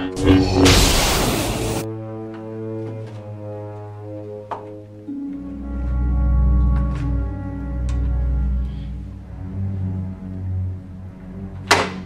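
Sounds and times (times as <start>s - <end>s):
loud rush of noise: 0.0s - 1.9s
deep drone: 0.0s - 2.0s
low bowed strings: 0.0s - 4.3s, 5.4s - 12.0s.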